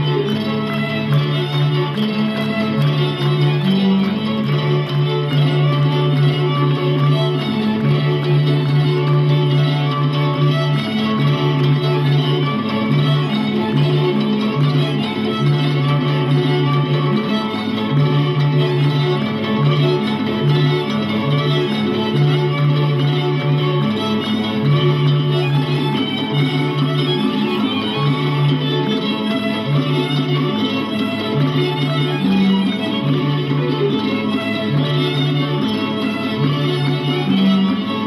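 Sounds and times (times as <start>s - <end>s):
folk violin music: 0.0s - 38.0s.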